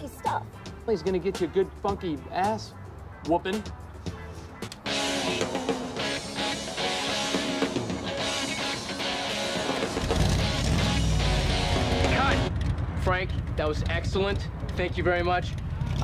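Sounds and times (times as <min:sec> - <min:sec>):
funky guitar music on car radio: 0:00.0 - 0:12.5.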